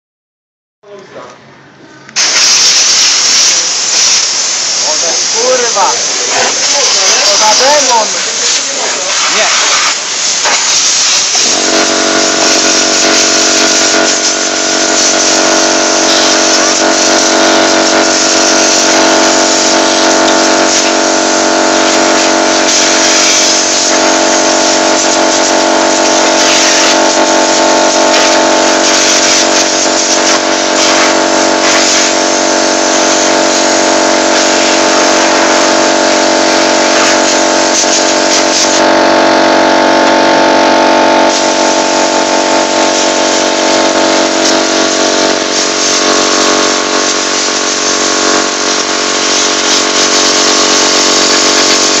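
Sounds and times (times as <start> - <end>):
steady hum: 0.8 - 52.0
compressed air blow gun hissing: 2.2 - 21.0.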